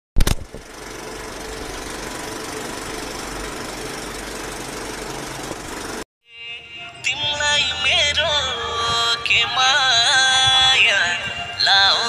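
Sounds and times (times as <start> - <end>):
film projector rattle and whir: 0.2 - 6.0.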